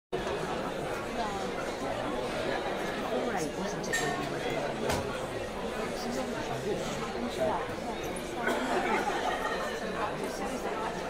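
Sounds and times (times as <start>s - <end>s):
audience chattering: 0.2s - 11.0s.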